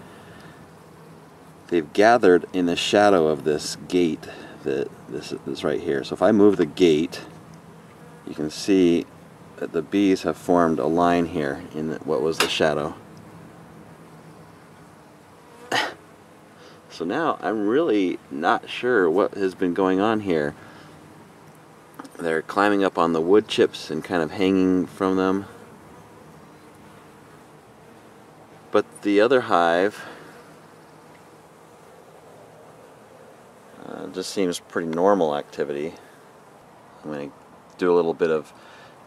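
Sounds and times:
honeybees buzzing: 0.0 - 39.0
person's sharp breath: 38.6 - 39.0.

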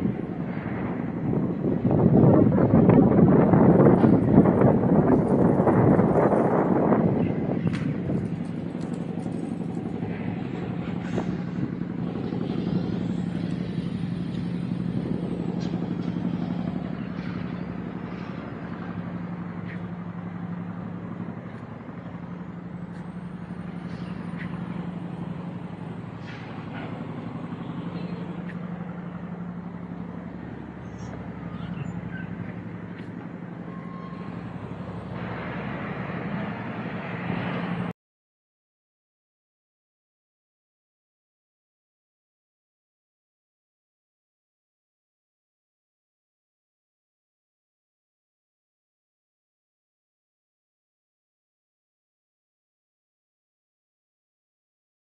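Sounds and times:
city outdoor noise: 0.0 - 37.9
low engine drone: 0.0 - 38.0.

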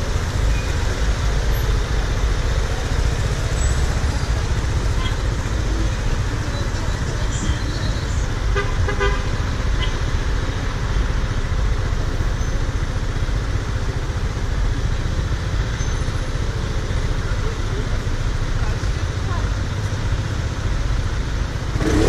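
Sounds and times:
wind and road noise: 0.0 - 22.0
vehicle horn toots: 8.5 - 10.0.

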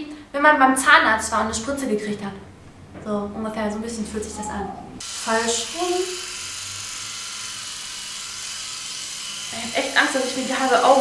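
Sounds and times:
epilator whirring: 3.9 - 11.0.

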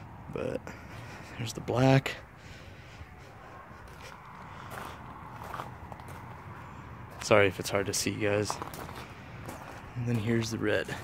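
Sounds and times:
footsteps on paving stones: 3.8 - 11.0.

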